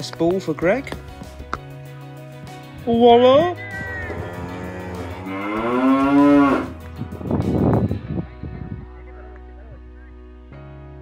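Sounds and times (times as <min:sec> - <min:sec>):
background music: 0:00.0 - 0:11.0
cow mooing: 0:03.9 - 0:06.8.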